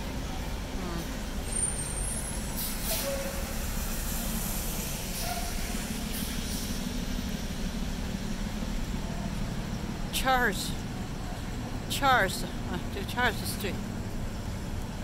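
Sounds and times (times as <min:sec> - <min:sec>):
low engine hum of traffic: 0:00.0 - 0:15.0
tyres swishing on wet road: 0:00.0 - 0:15.0.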